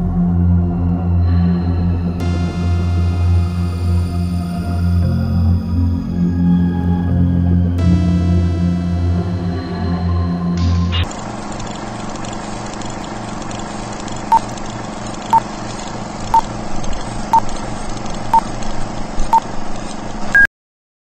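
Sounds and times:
low hum: 0.0s - 20.4s
short electronic beeps: 14.3s - 14.5s.

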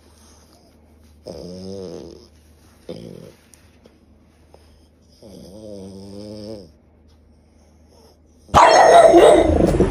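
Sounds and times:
dog vocalising loudly: 8.5s - 9.9s.

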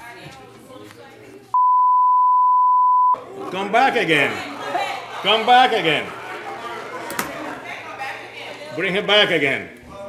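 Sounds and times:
censor bleep: 1.6s - 3.2s.

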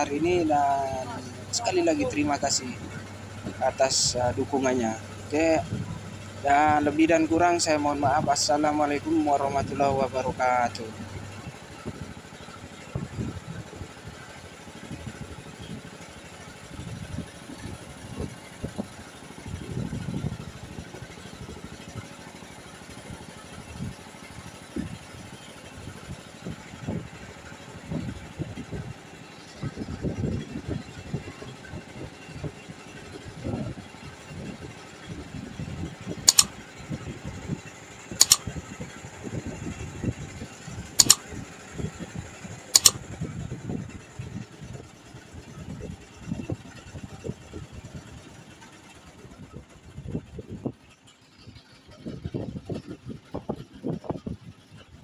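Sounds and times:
boat engine rumbling: 0.0s - 55.0s
sharp clicks: 36.3s - 36.5s, 38.2s - 38.5s, 41.0s - 41.3s, 42.8s - 43.1s.

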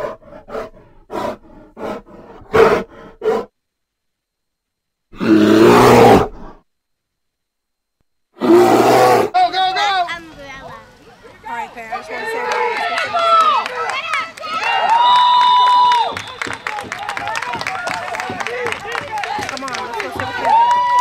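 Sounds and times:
roar sound effects: 5.1s - 6.6s, 8.4s - 9.3s.

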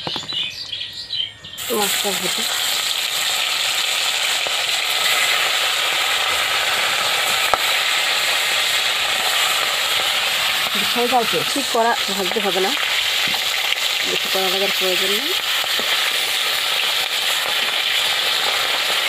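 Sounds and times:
fish sizzling in hot oil: 1.6s - 19.0s.

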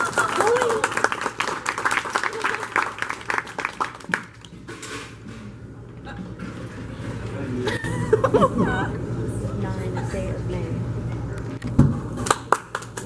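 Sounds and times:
audience applauding: 0.0s - 4.5s, 12.2s - 13.0s.

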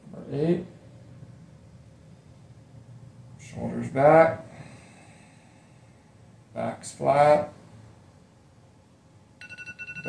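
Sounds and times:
electronic timer alarm beeping: 9.4s - 10.0s.

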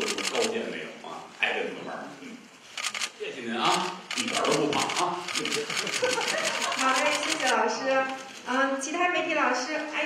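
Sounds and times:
rapid camera shutter clicks: 0.0s - 0.6s, 2.8s - 8.4s.

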